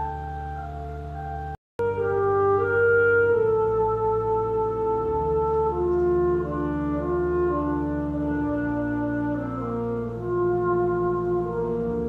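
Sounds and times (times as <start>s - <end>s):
pipe organ chords: 0.0s - 12.0s.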